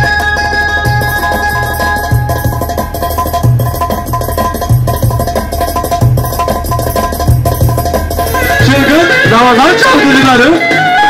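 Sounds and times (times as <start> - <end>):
electronic keyboard dance tune: 0.0 - 11.0
repeating drum beat: 0.0 - 11.0.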